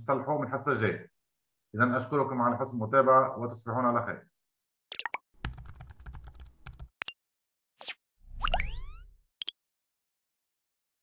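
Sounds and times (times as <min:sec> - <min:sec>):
keyboard typing clicks: 0:05.4 - 0:07.0.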